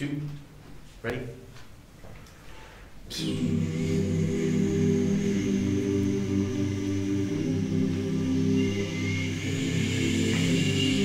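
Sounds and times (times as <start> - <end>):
a cappella group singing chords: 2.4 - 11.0.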